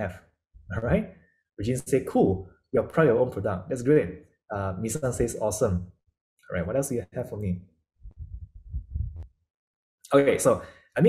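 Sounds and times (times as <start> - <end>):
muffled thuds and rumble: 8.1 - 9.3.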